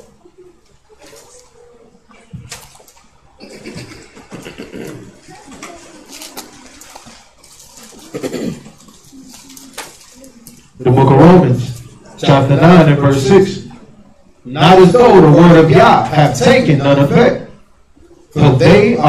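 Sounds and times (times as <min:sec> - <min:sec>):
paper pages rustling: 0:00.9 - 0:03.2, 0:05.3 - 0:10.8.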